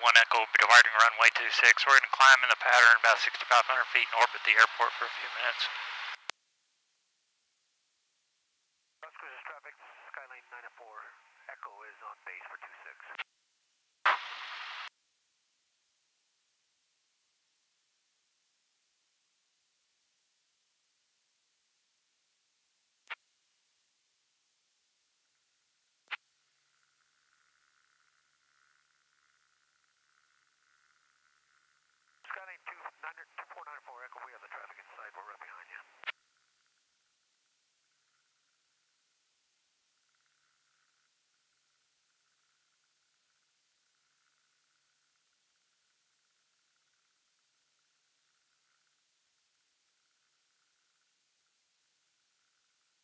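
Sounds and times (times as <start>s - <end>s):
voice over aircraft radio: 0.0s - 5.8s, 9.0s - 13.2s, 32.3s - 36.0s
radio static burst: 0.0s - 6.3s, 9.0s - 13.2s, 14.1s - 14.9s, 32.3s - 36.0s
headset hum and hiss: 0.0s - 7.0s, 7.6s - 15.0s, 23.1s - 53.0s
radio click: 14.1s - 14.4s, 32.3s - 36.1s.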